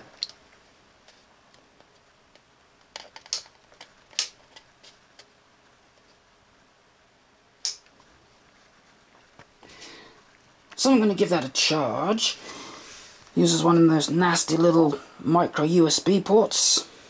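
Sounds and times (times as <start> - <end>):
sharp clicks and small knocks: 0.0 - 5.4.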